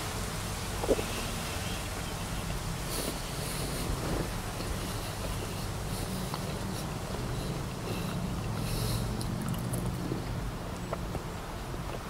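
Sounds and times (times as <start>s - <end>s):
low rumble and hiss inside car: 0.0s - 12.0s
chewing and mouth sounds: 0.8s - 1.4s, 2.9s - 12.0s.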